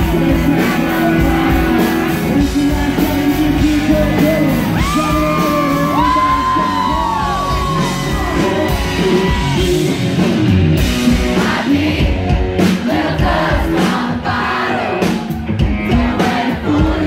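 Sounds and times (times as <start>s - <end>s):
electric guitar: 0.0s - 12.8s
man singing: 0.0s - 13.9s, 15.6s - 17.0s
country band playing: 0.0s - 17.0s
drums: 0.0s - 17.0s.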